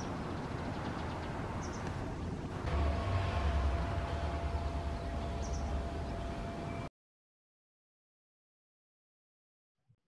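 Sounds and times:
small bird chirping: 0.0 - 1.9, 4.9 - 6.9
low outdoor rumble: 0.0 - 6.9.

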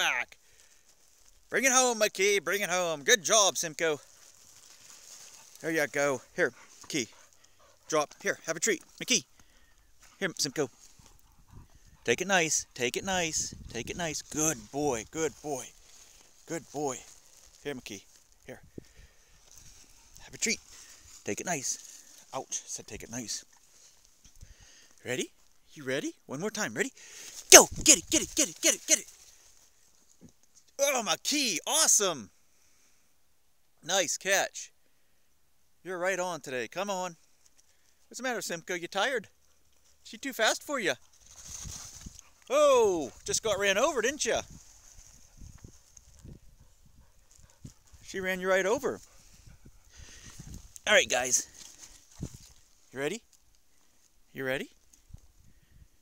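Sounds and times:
footsteps on dry leaves: 0.4 - 1.5, 4.0 - 5.6, 14.6 - 22.3, 41.1 - 42.4, 44.4 - 48.0, 49.0 - 54.1
person calling out: 27.5 - 29.1, 42.5 - 44.4.

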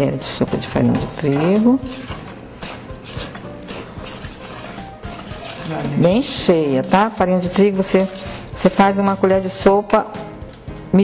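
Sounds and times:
background music: 0.0 - 11.0
whisk stirring batter in metal bowl: 0.5 - 9.9.

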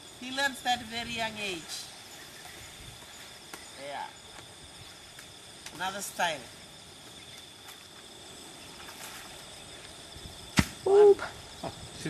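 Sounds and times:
insects chirring: 0.0 - 12.0
coconut thudding on ground: 10.5 - 10.9.

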